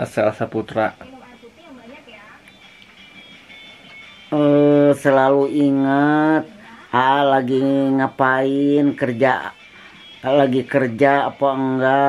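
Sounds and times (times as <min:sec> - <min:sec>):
indistinct television voices: 0:00.0 - 0:12.0
television music: 0:00.0 - 0:12.0.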